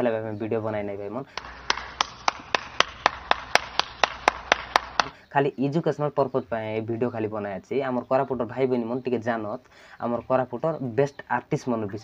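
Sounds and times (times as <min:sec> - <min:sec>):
person clapping hands: 0:01.3 - 0:05.2.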